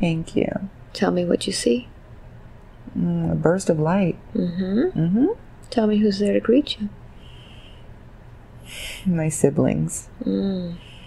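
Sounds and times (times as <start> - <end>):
faint low room hum: 0.0 - 11.0
woman breathing in: 7.2 - 8.0, 8.6 - 9.1.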